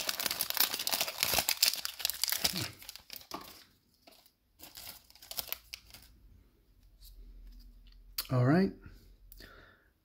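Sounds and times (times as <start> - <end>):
foil wrapper crinkling: 0.0 - 6.1.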